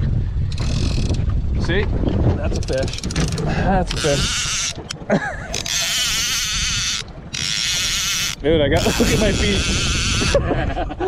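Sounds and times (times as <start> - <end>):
fishing reel whirring: 0.5 - 1.2, 2.7 - 10.4.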